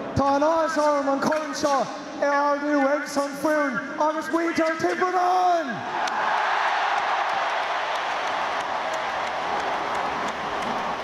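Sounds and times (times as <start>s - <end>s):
man shouting into a microphone: 0.2s - 5.9s
stadium crowd cheering: 5.0s - 11.0s.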